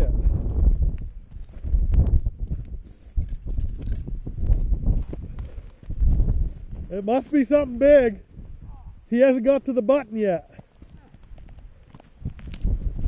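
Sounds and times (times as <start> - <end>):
wind buffeting microphone: 0.0 - 9.1, 10.5 - 13.0.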